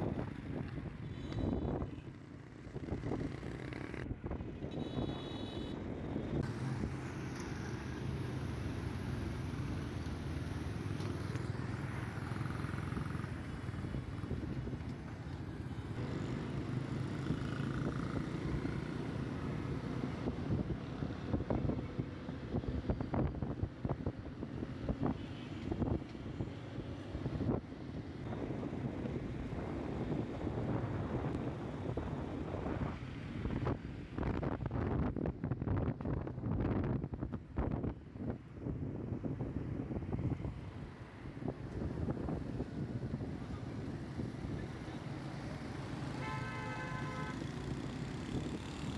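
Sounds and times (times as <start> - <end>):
engine and tyre rumble: 0.0 - 48.9.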